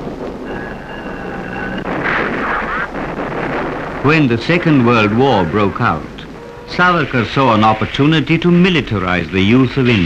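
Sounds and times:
artillery bombardment rumbling: 0.0s - 10.0s
steady high whine: 0.0s - 10.0s.

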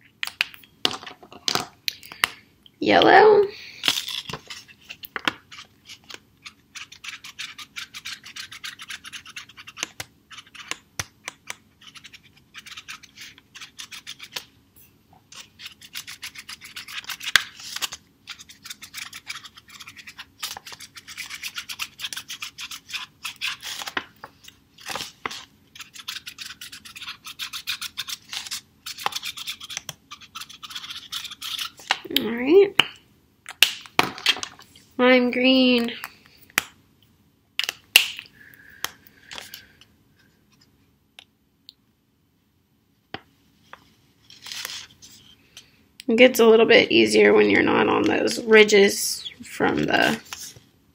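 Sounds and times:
marker scratching on paper plate: 4.5s - 10.8s, 11.7s - 14.4s, 15.3s - 23.9s, 25.0s - 31.9s.

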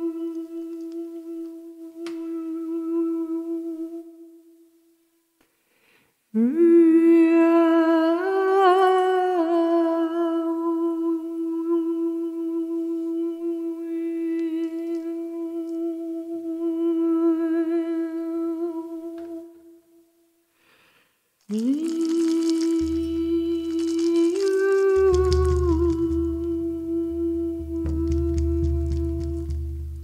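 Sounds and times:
woman humming chant: 0.0s - 4.5s, 6.4s - 19.9s, 21.5s - 30.0s.

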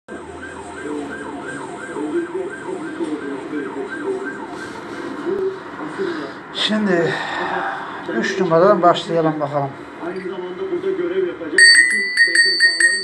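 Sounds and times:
siren yelping: 0.1s - 5.1s.

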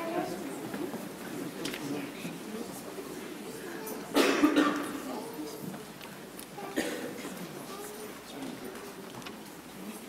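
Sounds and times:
murmur of people talking: 0.0s - 10.0s
loud cough: 4.1s - 5.0s, 6.7s - 7.4s.

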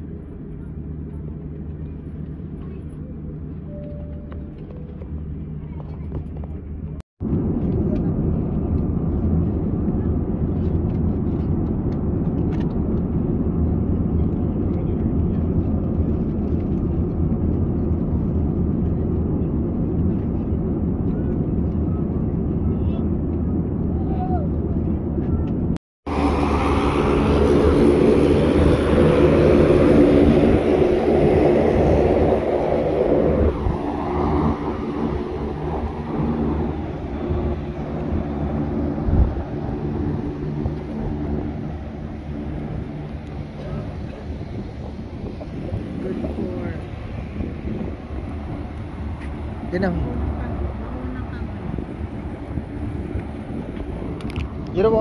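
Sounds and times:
aircraft engine drone: 0.0s - 55.0s
airliner cabin roar: 0.0s - 55.0s.

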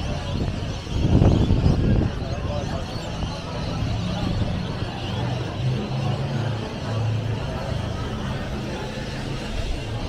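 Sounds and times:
cars driving with engine hum: 0.0s - 10.0s.

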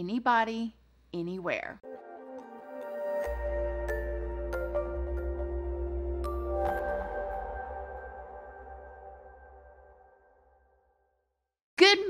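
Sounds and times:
woman speaking: 0.0s - 1.8s, 11.8s - 12.0s
synth chord: 1.8s - 10.8s.

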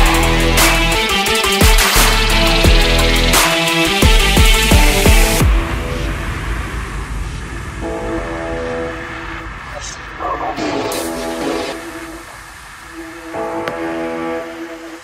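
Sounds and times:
held synth chords: 0.0s - 15.0s.

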